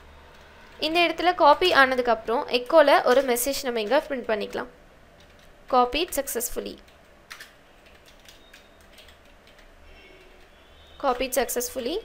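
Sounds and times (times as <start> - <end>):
faint keyboard typing: 0.2 - 1.9, 5.2 - 12.0.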